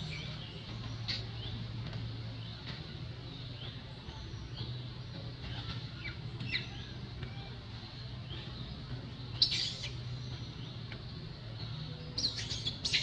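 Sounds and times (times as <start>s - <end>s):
birds chirping: 0.0s - 13.0s
steady low hum: 0.0s - 13.0s.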